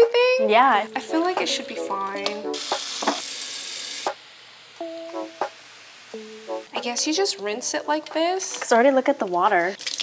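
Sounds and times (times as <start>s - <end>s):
background music notes: 0.0s - 2.8s, 4.8s - 9.3s
foam fizzing hiss: 2.5s - 6.7s.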